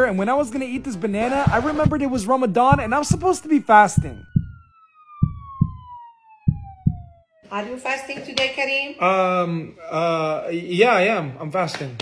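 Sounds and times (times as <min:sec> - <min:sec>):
deep heartbeat-like thumps: 0:01.4 - 0:07.2.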